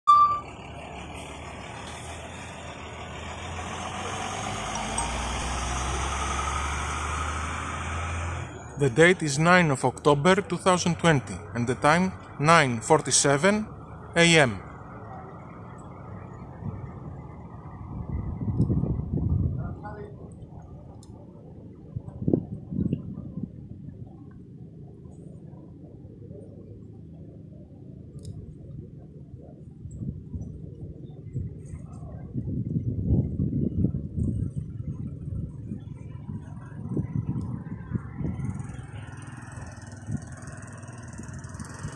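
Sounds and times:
short high beep: 0.0s - 0.5s
vehicle engine rumble: 0.0s - 41.9s.

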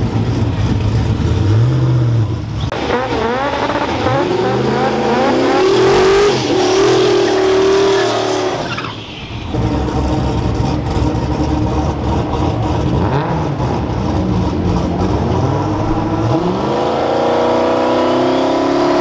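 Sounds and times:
car engine revving high: 0.0s - 8.7s, 9.5s - 19.0s.

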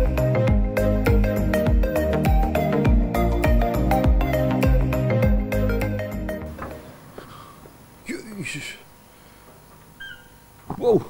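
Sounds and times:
man exclaiming: 8.1s - 8.8s, 10.7s - 11.0s.

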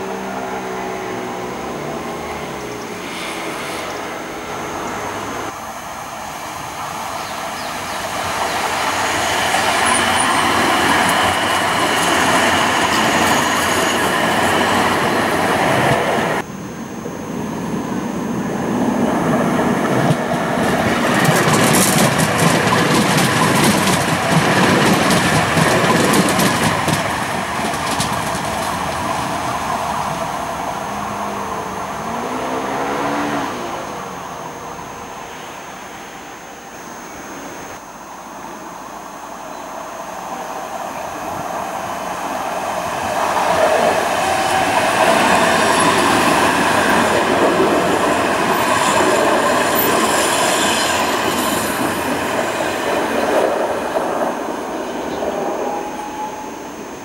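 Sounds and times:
tram wheels rolling on rails: 0.0s - 16.5s, 17.3s - 36.4s, 39.5s - 57.0s.

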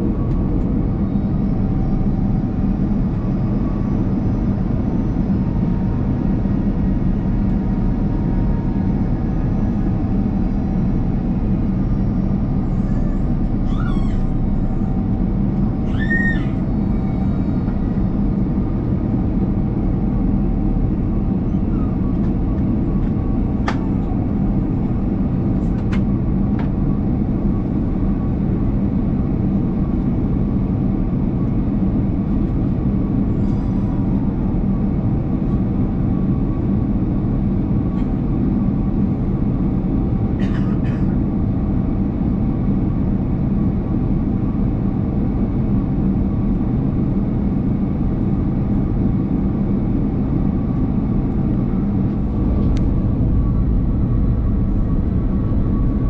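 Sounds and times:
jet engines droning: 0.0s - 56.0s.

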